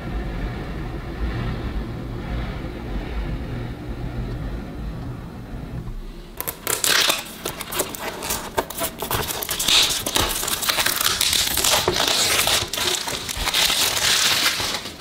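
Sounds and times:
steady low rumble: 0.0s - 6.5s
cellophane wrap crackling: 6.4s - 15.0s.

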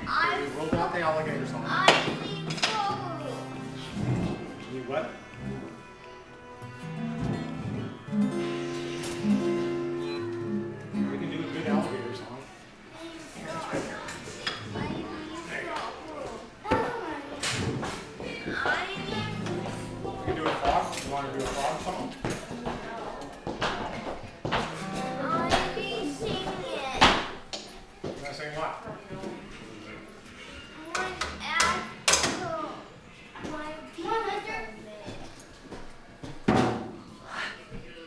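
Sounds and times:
girl shouting: 1.7s - 3.4s.

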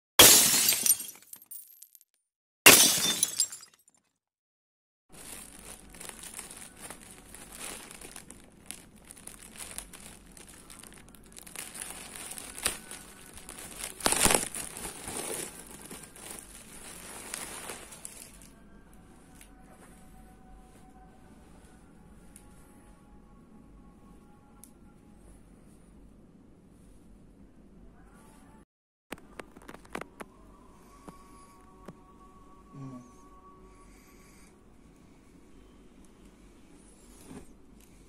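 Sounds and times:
glass shattering: 0.2s - 2.0s, 2.7s - 4.0s
plastic packaging crinkling: 5.1s - 18.5s, 29.2s - 30.2s.

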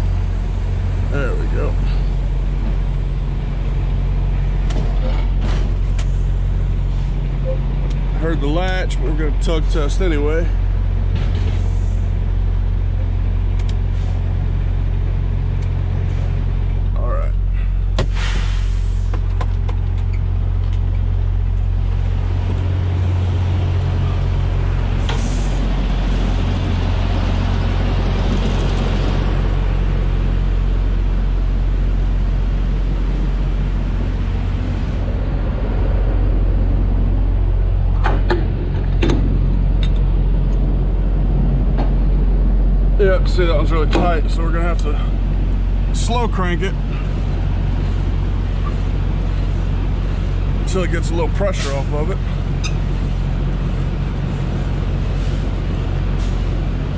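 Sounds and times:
diesel engine idling: 0.0s - 56.9s
sharp clicks and knocks: 38.0s - 40.6s.

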